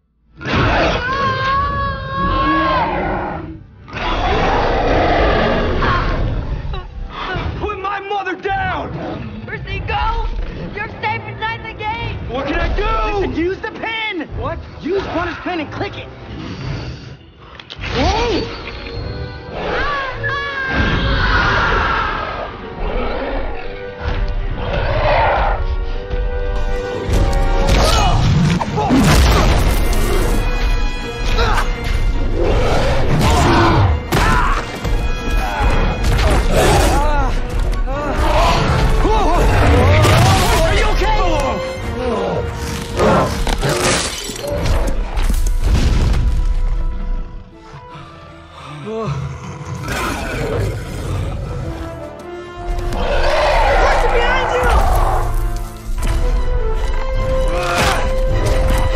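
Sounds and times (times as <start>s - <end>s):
dramatic orchestral music: 0.3s - 58.9s
creature roaring: 0.4s - 6.3s, 47.8s - 51.8s.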